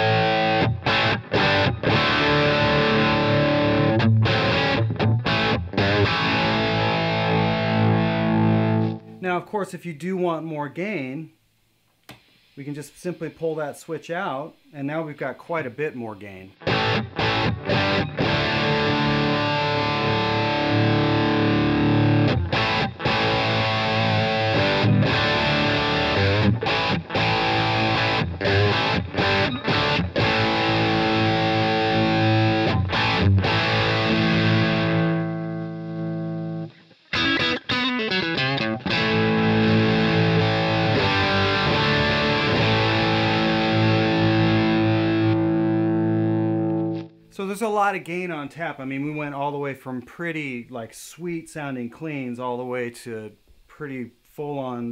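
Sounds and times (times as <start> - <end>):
distorted electric guitar: 0.0 - 9.2, 16.5 - 47.4.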